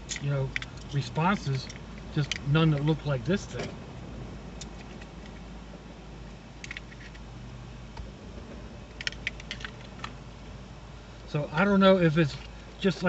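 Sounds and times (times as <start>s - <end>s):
vehicle cabin hum: 0.0s - 13.0s.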